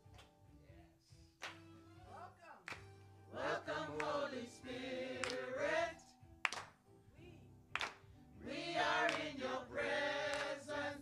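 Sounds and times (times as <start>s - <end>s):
sharp handclaps: 1.4s - 1.7s, 2.7s - 2.9s, 4.0s - 4.2s, 5.2s - 5.5s, 6.4s - 6.8s, 7.8s - 8.1s, 9.0s - 9.4s, 10.3s - 10.6s
choir singing: 3.3s - 6.2s, 8.4s - 11.0s.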